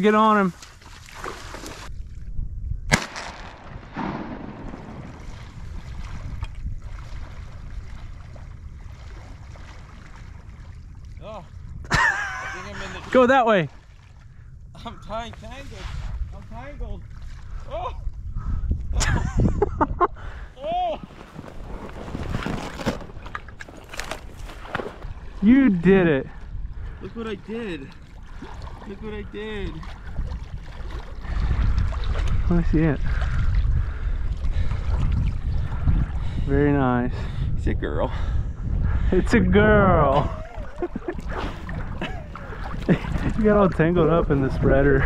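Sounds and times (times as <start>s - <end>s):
wind rumbling on microphone: 0.0s - 45.0s
water sloshing: 0.5s - 1.9s, 3.9s - 11.2s, 21.0s - 32.4s, 40.3s - 44.6s.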